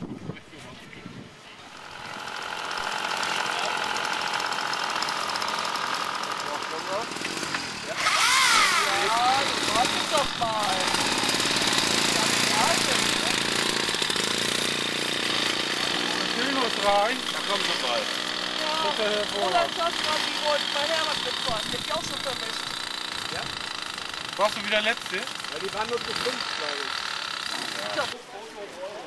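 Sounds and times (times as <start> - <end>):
small two-stroke engine running: 1.6 - 28.2.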